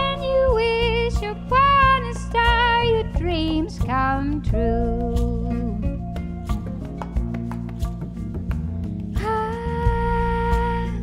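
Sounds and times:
soft musical accompaniment: 0:00.0 - 0:11.0.

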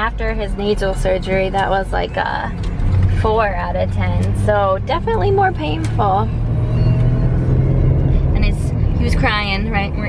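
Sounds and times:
car engine drone inside cabin: 0:00.0 - 0:10.0
road noise: 0:00.0 - 0:10.0.

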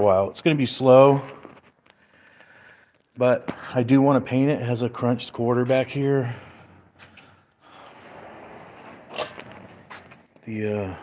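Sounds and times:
shuffling footsteps on concrete: 0:09.4 - 0:10.6.

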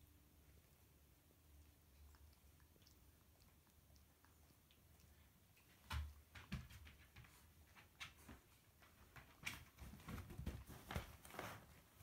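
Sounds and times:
puppies rustling and thumping: 0:05.6 - 0:12.0.

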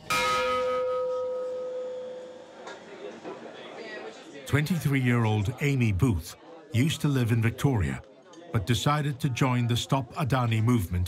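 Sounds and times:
bell ringing: 0:00.0 - 0:02.5.

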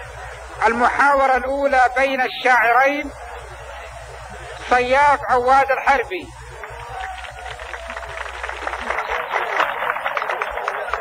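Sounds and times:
audience clapping: 0:06.5 - 0:11.0.

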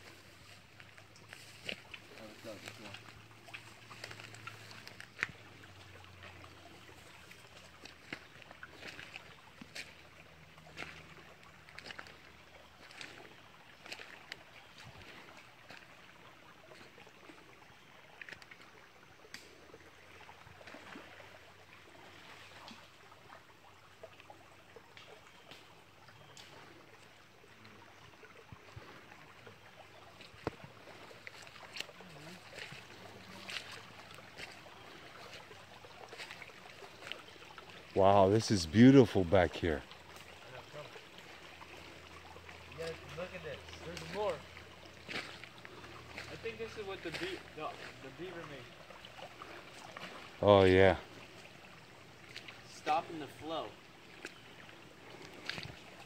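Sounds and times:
footsteps through twigs and leaves: 0:00.0 - 0:05.8, 0:06.8 - 0:16.0, 0:30.1 - 0:37.4, 0:43.8 - 0:48.1
faint stream trickling: 0:00.0 - 0:56.0.

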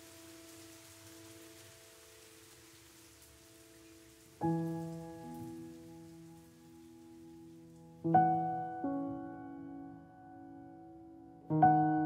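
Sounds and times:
gentle rain falling: 0:00.0 - 0:12.0
slow background music: 0:00.0 - 0:12.0
piano chord ringing: 0:04.4 - 0:12.0.

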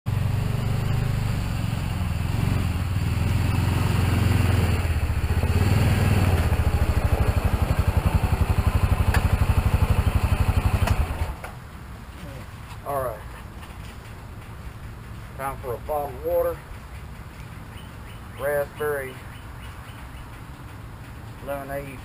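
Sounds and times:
utility vehicle engine idling: 0:00.1 - 0:22.0.

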